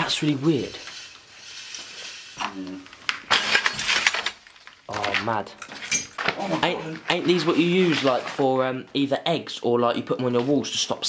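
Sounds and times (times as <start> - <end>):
broken glass clinking: 3.3 - 6.2.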